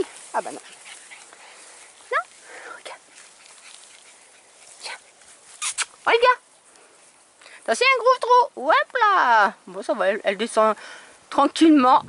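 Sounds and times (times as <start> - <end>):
puppies yipping: 0.0 - 6.0.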